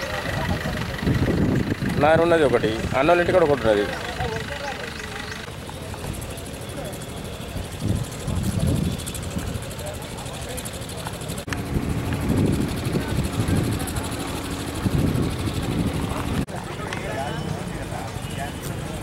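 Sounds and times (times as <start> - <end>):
steady low rumble: 11.4 - 16.5.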